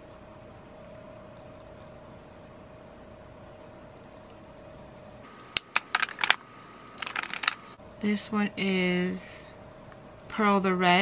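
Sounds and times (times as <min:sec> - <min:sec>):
metal cases clicking: 0:05.6 - 0:07.6.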